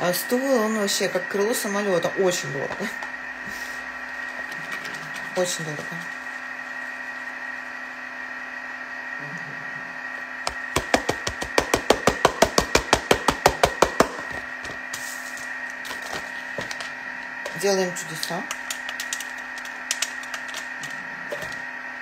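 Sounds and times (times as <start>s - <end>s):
packet shaken over metal pan: 18.5s - 20.7s.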